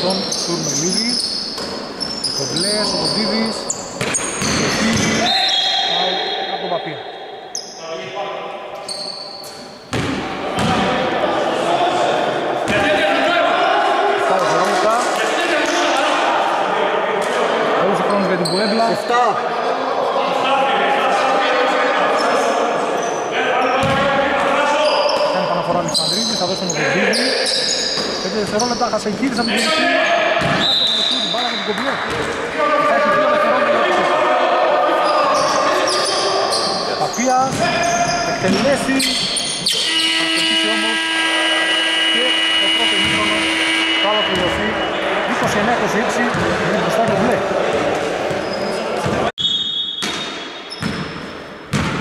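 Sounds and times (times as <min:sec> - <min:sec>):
voices echoing in hall: 0:00.0 - 0:52.0.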